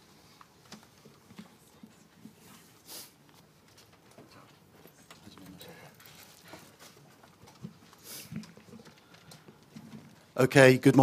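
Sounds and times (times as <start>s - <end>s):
faint clicks and rustles: 0.0s - 10.4s.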